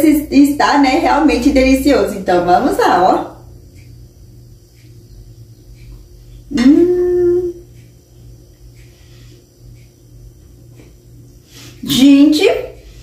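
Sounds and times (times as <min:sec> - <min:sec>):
woman humming mmm: 0:06.5 - 0:07.7.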